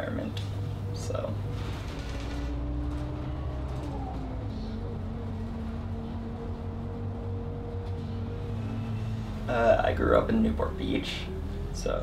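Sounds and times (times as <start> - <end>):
bus engine drone: 0.0 - 12.0.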